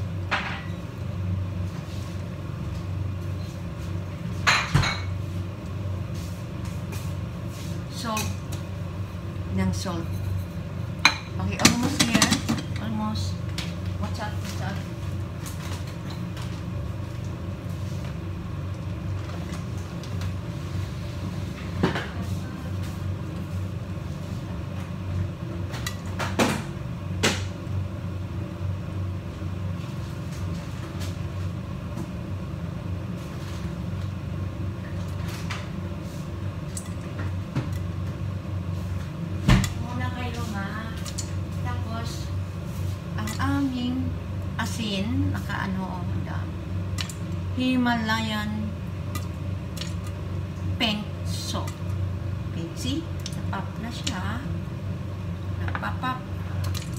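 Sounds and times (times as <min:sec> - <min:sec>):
low kitchen hum: 0:00.0 - 0:56.9.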